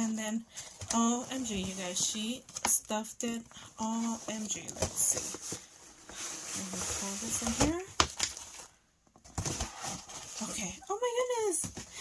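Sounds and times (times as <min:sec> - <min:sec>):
paper rustling: 0:03.8 - 0:10.8.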